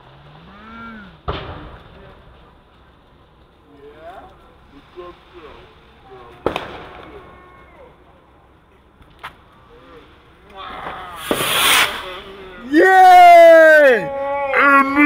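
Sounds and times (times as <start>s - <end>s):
fireworks hissing crackling burst: 1.1s - 15.0s
fireworks bang: 1.2s - 2.6s, 5.3s - 7.5s, 10.6s - 13.4s.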